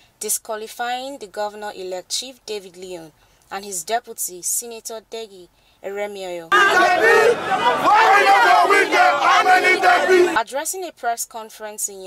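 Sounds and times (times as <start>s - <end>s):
crowd shouting: 6.5s - 10.4s.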